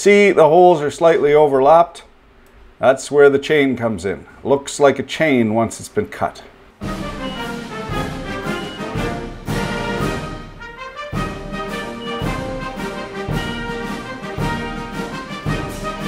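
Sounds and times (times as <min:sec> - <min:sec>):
orchestral music with brass: 0:06.8 - 0:16.0.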